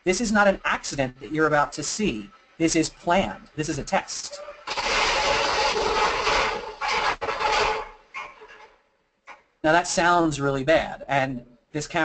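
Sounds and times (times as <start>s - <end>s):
steady whine: 0.0s - 8.2s
elevator car crashing into buffer: 4.6s - 8.0s.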